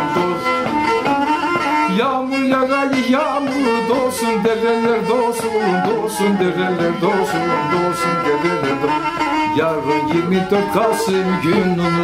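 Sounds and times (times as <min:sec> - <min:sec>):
bowed fiddle quick melody: 0:00.0 - 0:12.0.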